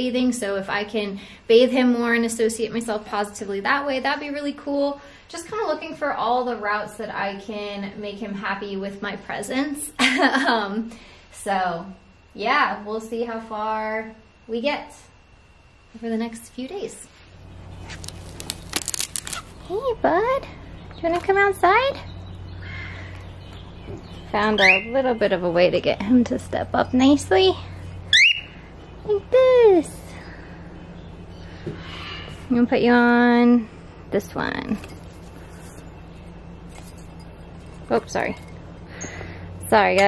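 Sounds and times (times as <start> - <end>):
steady low hum: 0.0 - 40.0
handling clicks and rustles: 17.7 - 19.7, 34.5 - 38.8.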